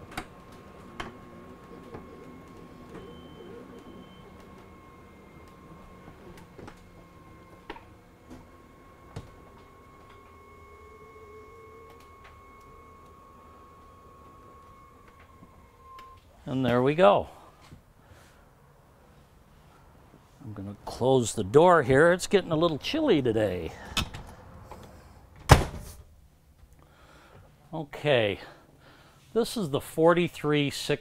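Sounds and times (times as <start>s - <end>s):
electric motor whine: 0.0s - 16.2s.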